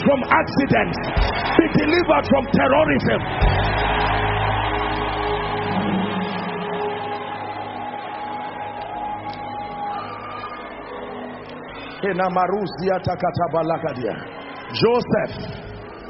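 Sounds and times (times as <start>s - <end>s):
keyboard pad chords: 0.0s - 16.0s.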